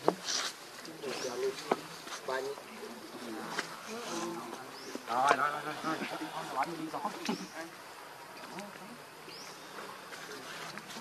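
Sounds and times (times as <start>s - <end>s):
distant voices of people: 0.0s - 11.0s
insects buzzing: 0.0s - 11.0s.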